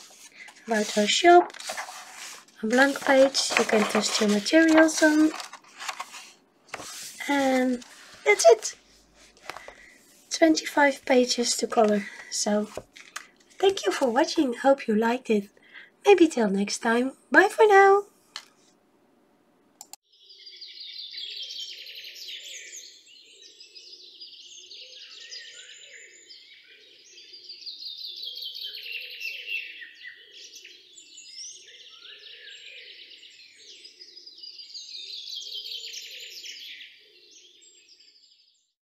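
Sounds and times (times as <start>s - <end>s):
small birds chirping and trilling: 20.1s - 38.7s.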